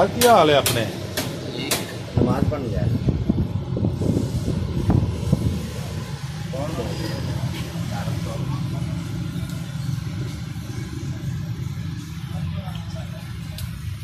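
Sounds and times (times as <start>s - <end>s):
low mechanical rumble: 0.0s - 14.0s
voices talking: 5.6s - 14.0s.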